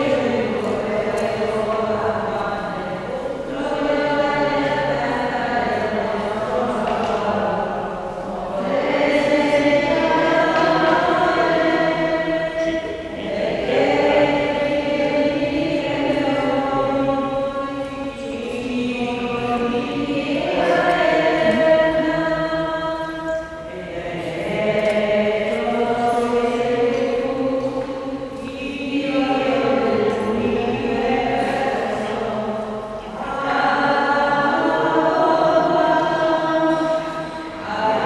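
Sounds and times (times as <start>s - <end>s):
group singing a hymn: 0.0s - 38.0s.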